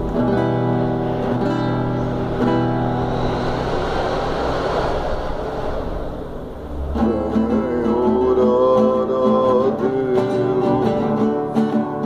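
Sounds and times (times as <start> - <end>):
classical guitar chord strummed: 0.0 - 3.1, 6.9 - 12.0
steady rushing noise: 0.0 - 12.0.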